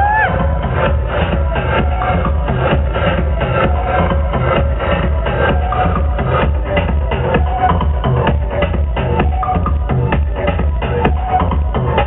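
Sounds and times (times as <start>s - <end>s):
electronic dance music: 0.0s - 12.0s
heavy bass: 0.0s - 12.0s.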